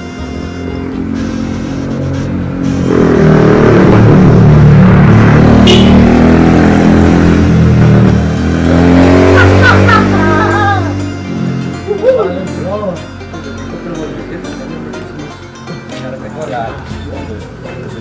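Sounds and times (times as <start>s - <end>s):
vehicle engine passing by: 0.2s - 13.0s.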